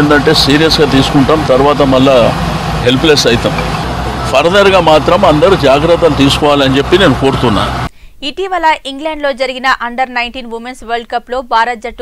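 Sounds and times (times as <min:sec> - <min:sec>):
man speaking: 0:00.0 - 0:07.9.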